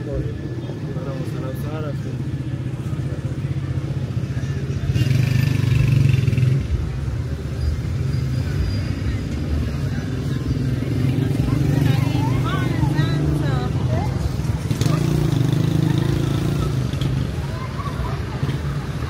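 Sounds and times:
passers-by talking: 0.0 - 19.0
road traffic: 0.0 - 19.0.

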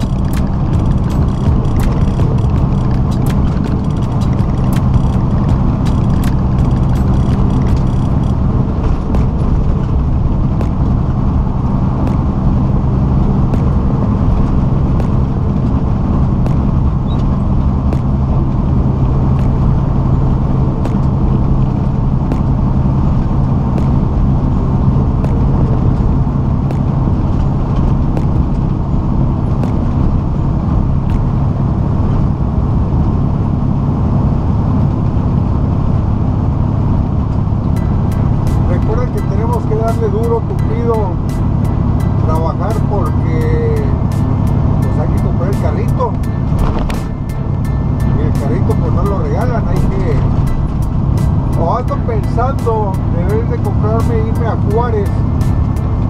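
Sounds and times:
truck engine and tyres droning: 0.0 - 56.0.

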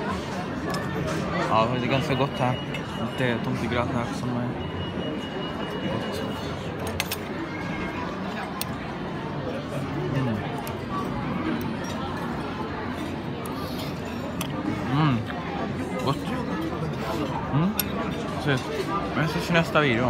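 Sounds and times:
background conversation of diners: 0.0 - 20.0
cutlery clinking on plates: 6.5 - 7.3.

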